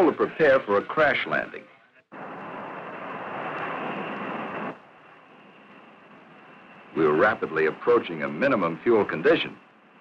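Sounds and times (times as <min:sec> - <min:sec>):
jet engines rushing in flight: 0:02.1 - 0:10.0.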